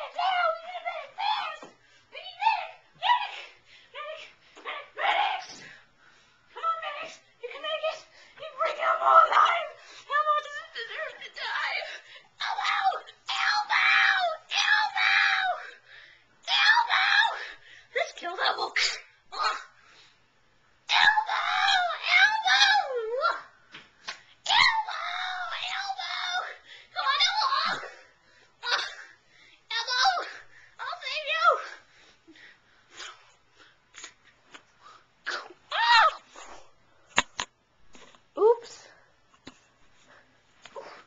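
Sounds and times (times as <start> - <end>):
child screaming: 12.4 - 15.7, 20.9 - 23.4, 24.5 - 28.0, 35.7 - 36.2.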